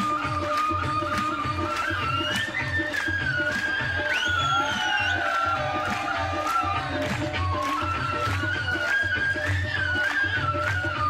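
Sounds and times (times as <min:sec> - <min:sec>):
steady drum beat: 0:04.4 - 0:08.9.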